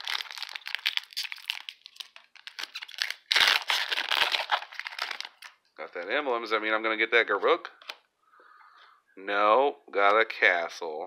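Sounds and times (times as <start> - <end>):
foil wrapper tearing and crinkling: 0.0 - 5.6.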